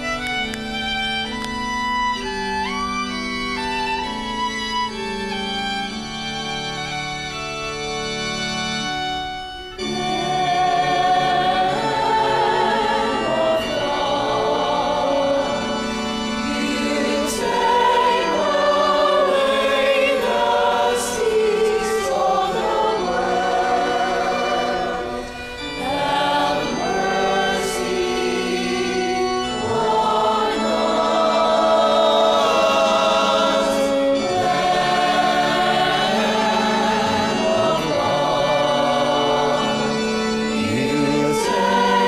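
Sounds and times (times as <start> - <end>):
choir singing a hymn: 1.9 - 42.0.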